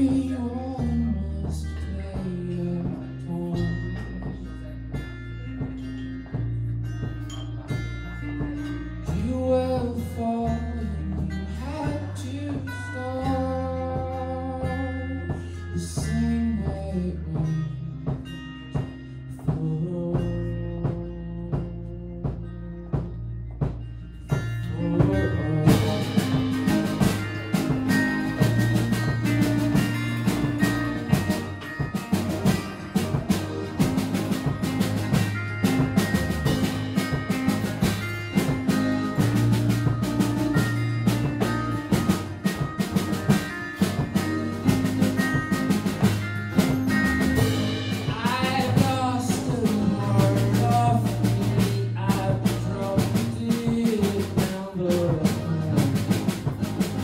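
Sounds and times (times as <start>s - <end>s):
drum kit beat: 0.0s - 57.0s
pop band playing live: 0.0s - 57.0s.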